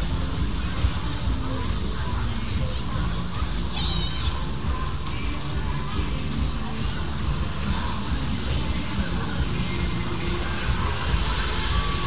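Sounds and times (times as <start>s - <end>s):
fairground music: 0.0s - 12.0s.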